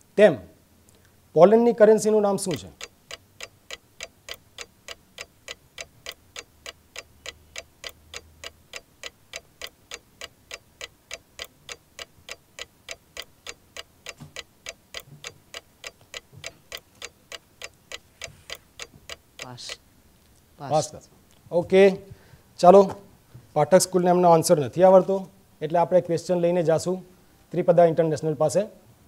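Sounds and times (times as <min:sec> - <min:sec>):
countdown clock ticking: 0:02.5 - 0:19.8.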